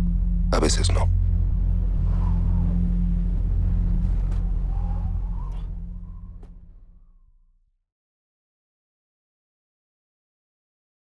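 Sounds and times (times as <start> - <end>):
deep low rumble: 0.0 - 7.8.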